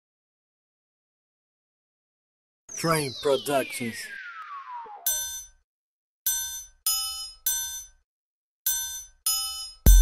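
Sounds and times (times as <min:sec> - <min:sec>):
bell-tone hits: 0:05.1 - 0:05.6.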